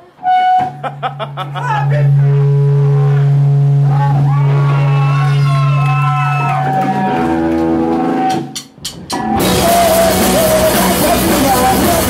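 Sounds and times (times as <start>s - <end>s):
sliding wavering guitar tones: 0.2s - 8.2s
electric guitar drone: 1.0s - 8.4s.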